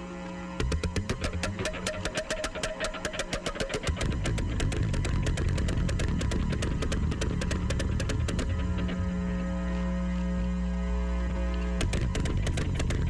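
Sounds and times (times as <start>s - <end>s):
fast drum pattern: 0.6s - 8.9s, 11.8s - 13.0s
heavy sustained low bass: 3.8s - 13.0s.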